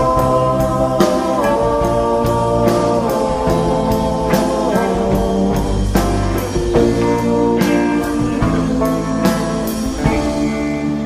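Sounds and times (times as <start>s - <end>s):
bass: 0.0s - 11.0s
drum kit hits: 0.0s - 11.0s
electric guitar: 0.0s - 11.0s.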